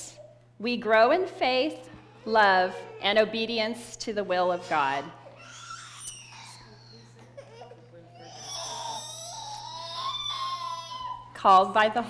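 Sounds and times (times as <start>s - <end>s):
baby whining cry: 4.4s - 11.3s.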